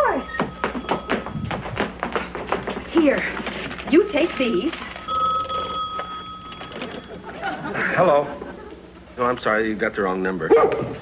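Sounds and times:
telephone bell ringing: 0.3 - 1.5, 4.9 - 7.6
voices: 2.9 - 5.7.

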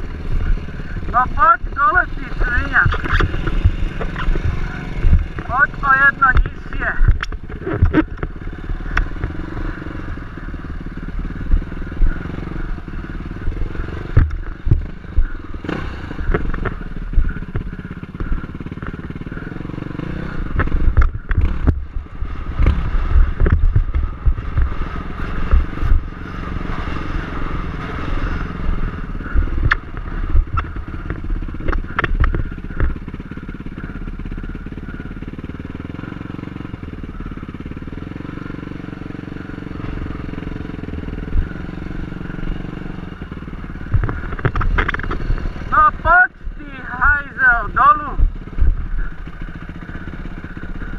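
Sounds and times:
dirt bike engine at low revs: 0.0 - 50.9.

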